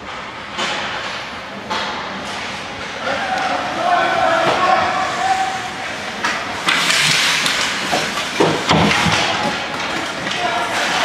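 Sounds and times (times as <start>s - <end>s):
skate blades scraping ice: 5.2s - 11.0s
heavy knocks against rink boards: 6.2s - 11.0s.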